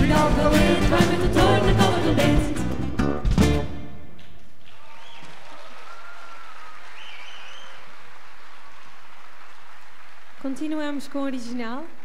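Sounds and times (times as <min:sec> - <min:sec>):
audience applauding: 0:04.4 - 0:12.0
faint cheers: 0:04.7 - 0:08.0.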